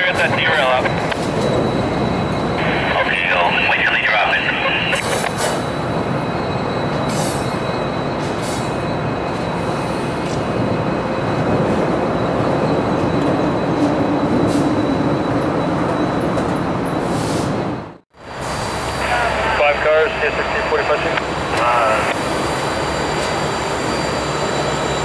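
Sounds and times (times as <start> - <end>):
diesel locomotive engine rumbling: 0.0 - 25.0.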